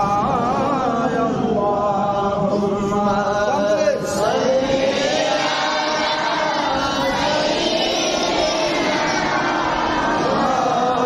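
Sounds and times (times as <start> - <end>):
man chanting melodic recitation: 0.0 - 7.3.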